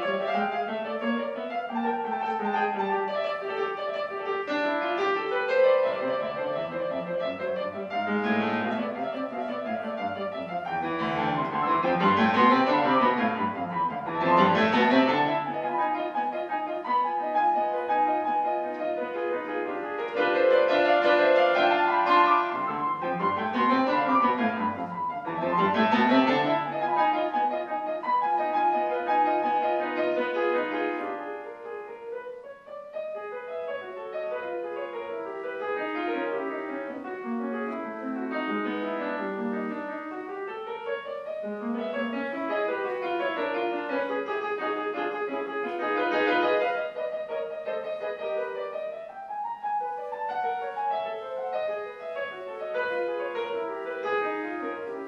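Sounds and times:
grand piano classical runs: 0.0s - 55.0s.

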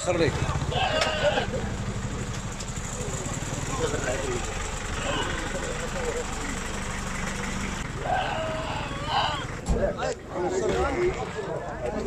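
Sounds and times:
vehicle engine idling: 0.0s - 12.0s
faint voices: 2.7s - 12.0s.

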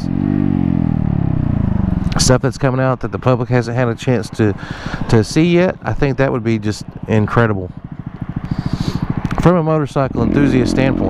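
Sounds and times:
motorcycle engine: 0.0s - 11.0s.

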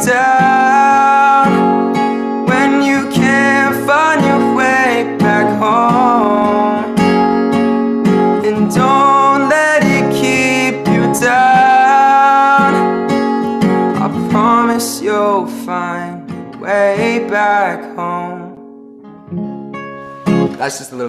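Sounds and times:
young man singing: 0.0s - 7.3s, 8.3s - 18.6s
acoustic guitar strumming: 0.0s - 21.0s.

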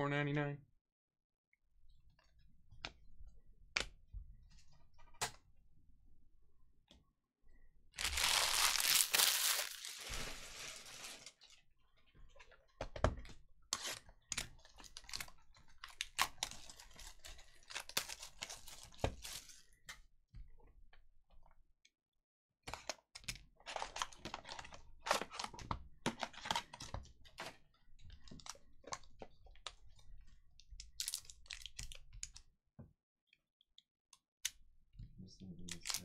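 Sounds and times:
foil card packs crinkling: 8.0s - 11.4s.

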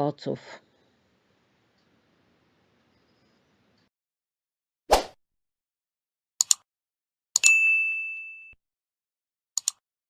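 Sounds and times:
double mouse click: 6.4s - 6.6s, 9.6s - 9.8s
bright bell ding: 7.4s - 8.6s.

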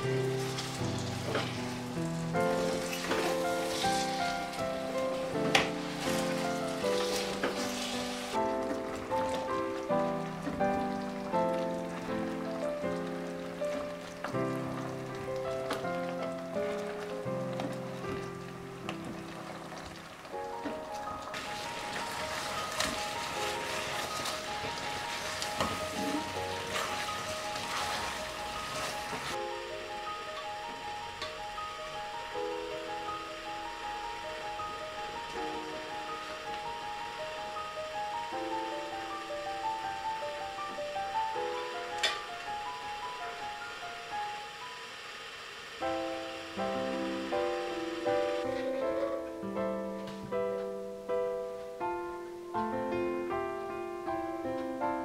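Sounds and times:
apples simmering in syrup: 0.0s - 49.8s
gentle background music: 0.0s - 55.0s
spatula stirring pot: 21.4s - 29.4s.

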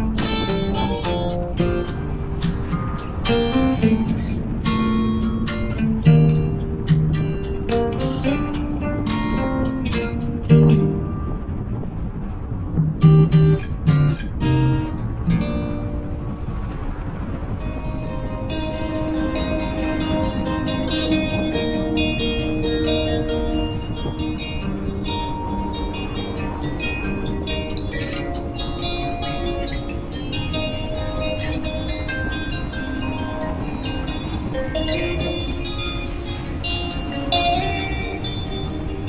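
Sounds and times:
guitar background music: 0.0s - 39.0s.

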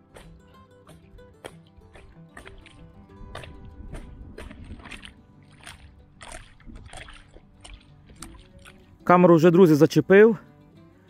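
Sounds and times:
quiet background music: 0.0s - 11.0s
wet sloshes: 0.2s - 9.0s.

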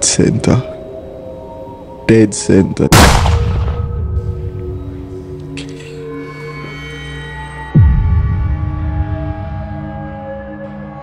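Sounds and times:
soft music with sustained tones: 0.0s - 11.0s
loud gunshot: 2.9s - 3.9s.

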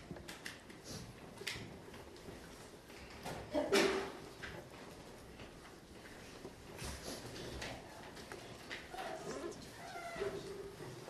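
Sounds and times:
pencils and desks clicking: 0.0s - 11.0s
children talking quietly: 3.0s - 4.6s, 7.0s - 11.0s.

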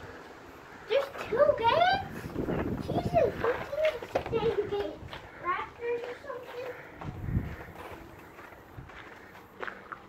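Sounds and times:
children chattering and calling: 0.5s - 10.0s.

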